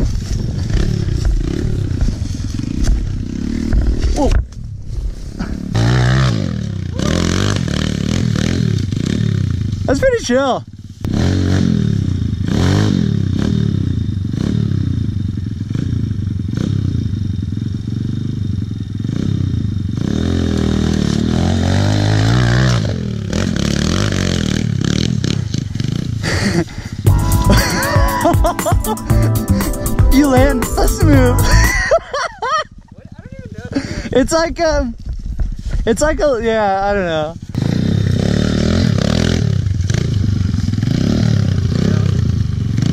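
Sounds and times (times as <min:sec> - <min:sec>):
pit bike engine revving: 0:00.0 - 0:04.3, 0:05.4 - 0:10.2, 0:11.0 - 0:32.0, 0:37.4 - 0:42.9.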